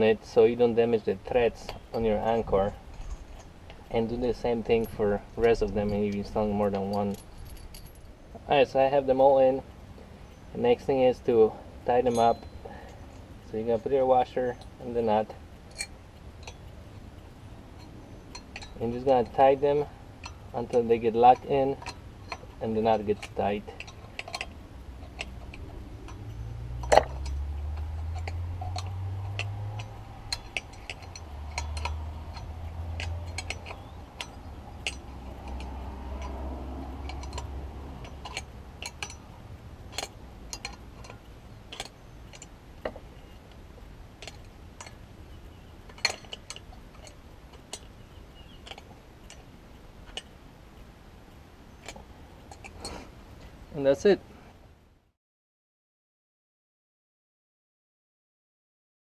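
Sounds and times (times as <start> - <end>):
wrench clicking on nuts: 25.1 - 39.3.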